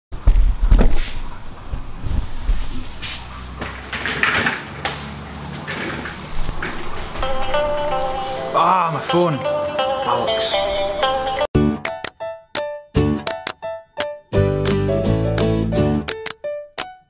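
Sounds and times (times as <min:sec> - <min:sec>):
sharp knocks and bumps: 0:00.2 - 0:07.7
music with held notes: 0:07.2 - 0:17.0.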